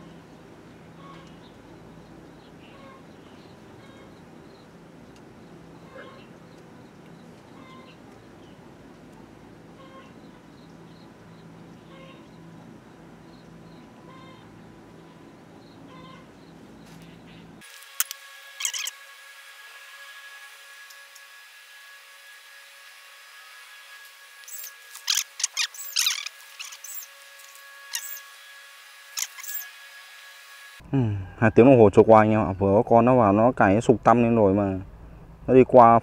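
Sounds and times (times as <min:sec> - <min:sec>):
high-pitched animal chirps: 0:18.6 - 0:18.9, 0:24.5 - 0:27.1, 0:27.9 - 0:28.2, 0:29.2 - 0:29.6.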